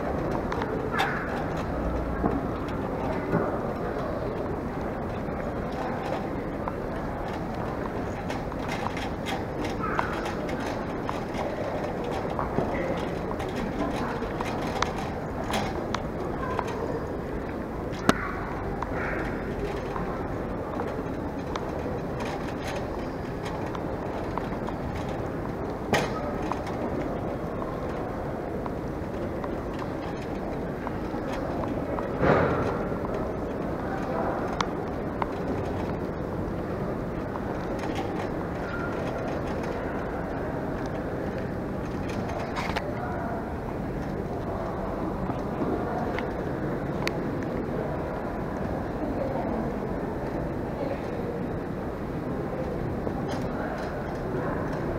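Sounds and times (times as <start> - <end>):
trolley bump: 0.0 - 43.2
trolley clicks and knocks: 0.0 - 48.8
indistinct voices: 0.0 - 54.9
trolley wheels rolling: 0.0 - 54.9.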